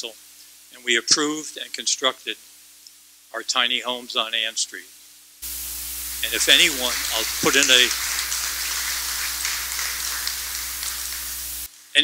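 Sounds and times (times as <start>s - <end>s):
low electrical hum: 0.0s - 12.0s
steady hiss: 0.0s - 12.0s.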